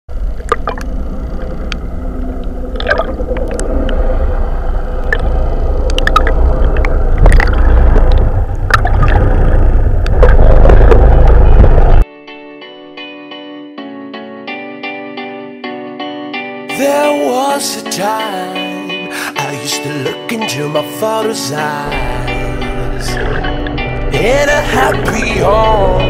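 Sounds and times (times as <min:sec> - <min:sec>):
deep rumble: 0:00.1 - 0:12.0, 0:21.9 - 0:26.0
gurgling rushing water: 0:00.3 - 0:12.0.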